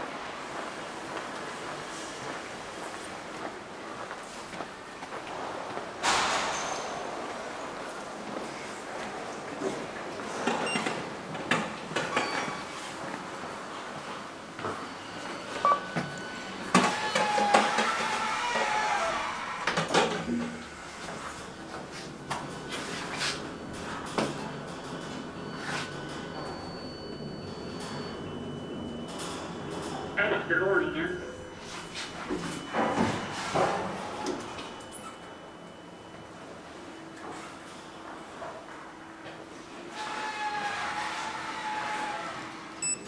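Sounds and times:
elevator high whine: 0:00.0 - 0:43.0
voices echoing in a hall: 0:30.0 - 0:31.5.

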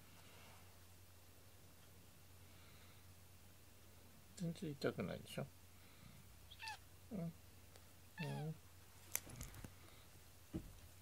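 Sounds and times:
cat meowing: 0:06.5 - 0:06.8, 0:08.2 - 0:08.6.

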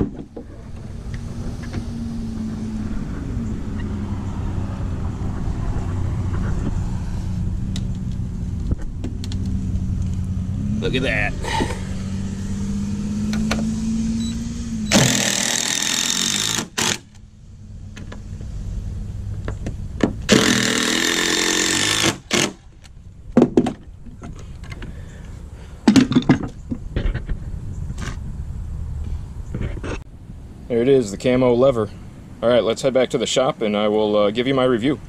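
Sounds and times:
sharp clicks and knocks: 0:07.7 - 0:10.3, 0:13.3 - 0:13.7
cordless drill driving screws: 0:14.9 - 0:17.1, 0:20.3 - 0:22.6.

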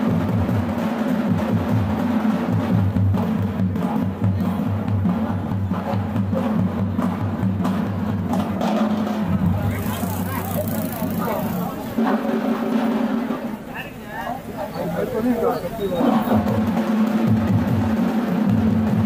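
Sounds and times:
percussion-led music with drum hits: 0:00.0 - 0:13.9, 0:15.9 - 0:19.0
crowd talking: 0:00.0 - 0:19.0.

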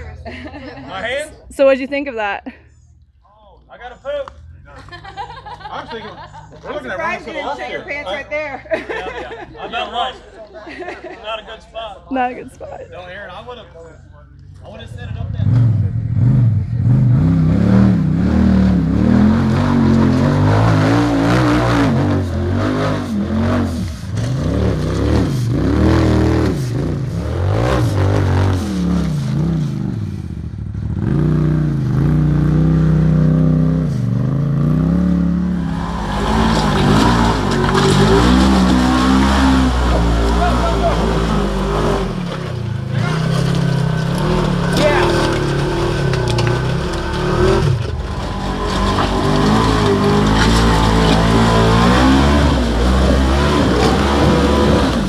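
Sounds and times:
off-road engines revving: 0:03.6 - 0:55.0.

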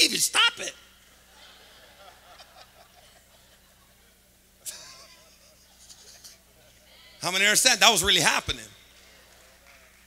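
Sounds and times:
low steady hum: 0:00.0 - 0:10.0
faint laughter of crowd: 0:01.3 - 0:06.4.

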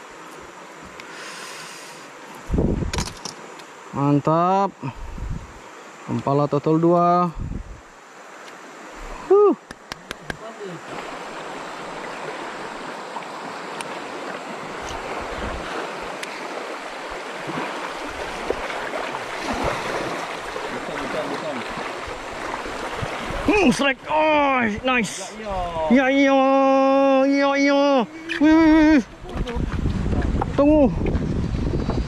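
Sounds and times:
river rapids rushing: 0:10.2 - 0:25.4.

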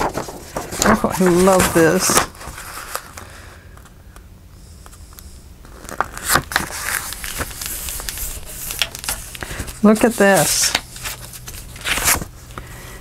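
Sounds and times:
paper rustling: 0:00.0 - 0:03.3, 0:05.7 - 0:12.6.

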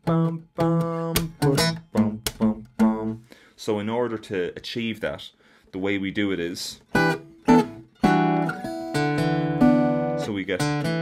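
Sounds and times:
fingerpicked acoustic guitar: 0:00.0 - 0:03.4, 0:06.8 - 0:11.0.

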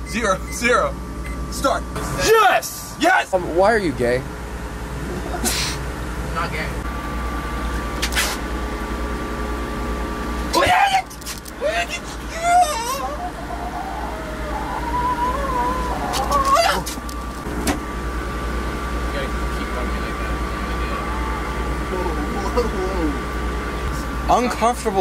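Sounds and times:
low hum: 0:04.2 - 0:24.3
laughter: 0:05.0 - 0:05.7
wordless voices: 0:10.6 - 0:17.1, 0:19.1 - 0:25.0.

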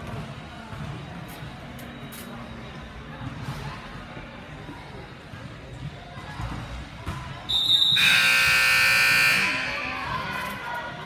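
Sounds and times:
scoreboard buzzer blaring: 0:07.8 - 0:10.1.

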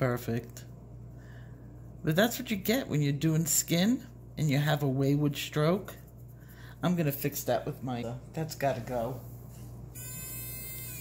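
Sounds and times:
electric eraser motor whine: 0:09.9 - 0:11.0.

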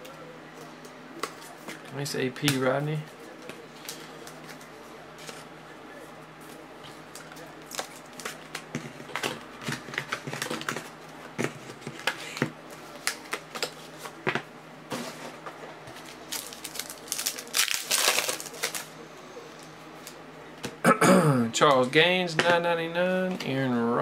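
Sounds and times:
foil wrappers crinkling: 0:16.0 - 0:18.9.

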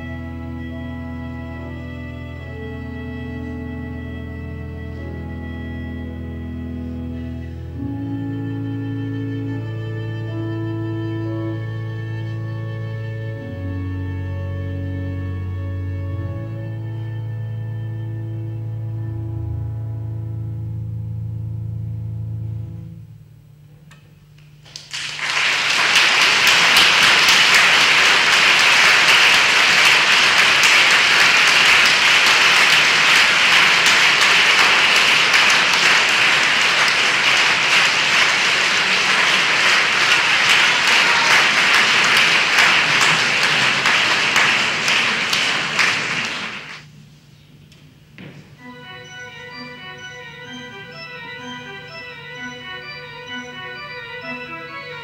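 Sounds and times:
cello: 0:00.0 - 0:23.2
pipe organ chord: 0:00.0 - 0:55.0
audience applause: 0:24.7 - 0:46.9.

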